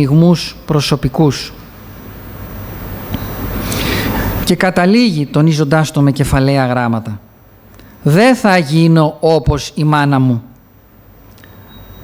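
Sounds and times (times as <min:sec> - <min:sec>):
road traffic rumble: 0:02.2 - 0:04.5.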